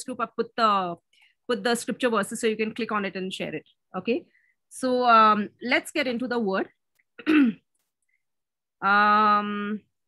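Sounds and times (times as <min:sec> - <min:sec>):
woman clearing her throat: 0:07.2 - 0:07.7.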